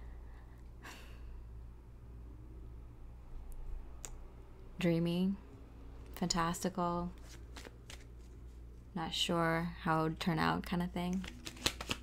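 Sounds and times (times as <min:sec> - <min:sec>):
woman's voice: 0:04.8 - 0:05.4, 0:06.2 - 0:07.2, 0:09.0 - 0:11.3.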